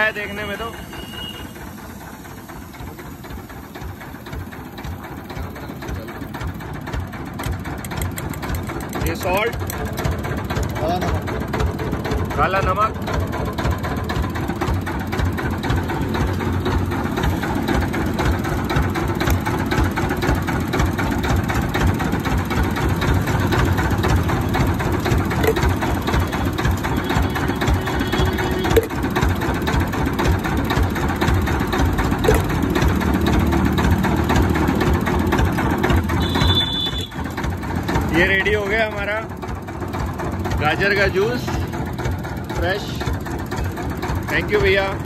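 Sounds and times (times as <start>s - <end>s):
juice machine running: 0.0s - 45.0s.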